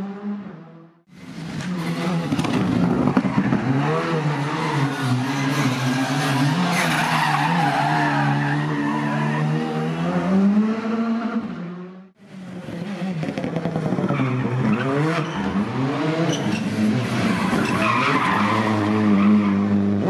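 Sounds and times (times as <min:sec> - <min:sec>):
rally car engines revving: 0:00.0 - 0:20.0.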